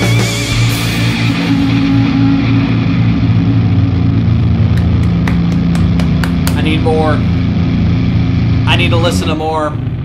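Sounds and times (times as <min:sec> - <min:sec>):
distorted electric guitar and bass drone: 0:00.0 - 0:10.0
hands clapping: 0:04.7 - 0:06.9.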